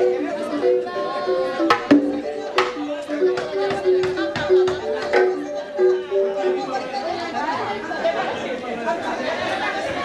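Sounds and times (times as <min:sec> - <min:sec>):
song ending: 0:00.0 - 0:07.3
crowd chatter in a hall: 0:00.0 - 0:10.0.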